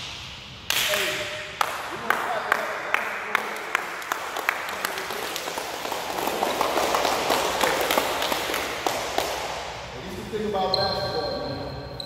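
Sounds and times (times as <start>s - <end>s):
people clapping: 0.6s - 9.8s.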